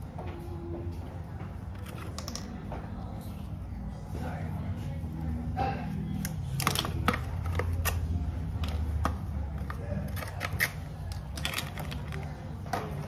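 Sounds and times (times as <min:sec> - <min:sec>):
packaging clicks and crinkles: 0:09.6 - 0:13.0.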